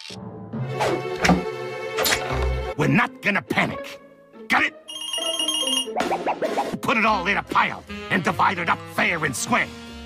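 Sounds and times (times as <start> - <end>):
cartoon music with sustained tones: 0.2 - 9.8.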